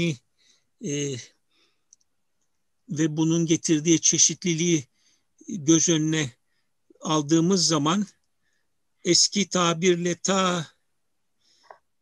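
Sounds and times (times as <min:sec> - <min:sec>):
man speaking: 0:00.0 - 0:00.2, 0:00.8 - 0:01.4, 0:02.9 - 0:08.2, 0:09.0 - 0:10.8.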